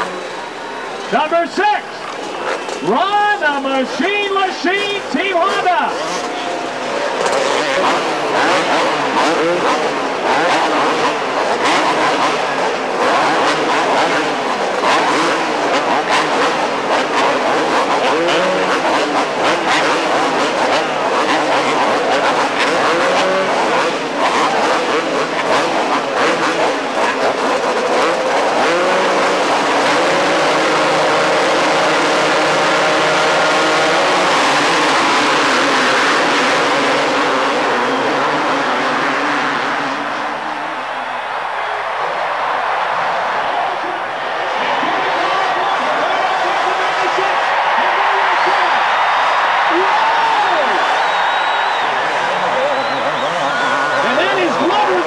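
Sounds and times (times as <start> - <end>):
motorcycles revving: 0.0 - 55.0.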